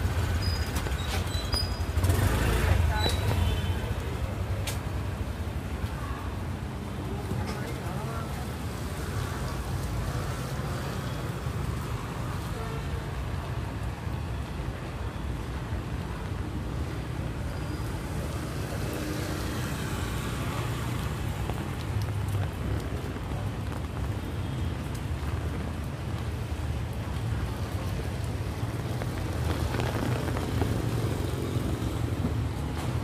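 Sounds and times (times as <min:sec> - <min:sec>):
motorbike and car traffic: 0:00.0 - 0:33.0.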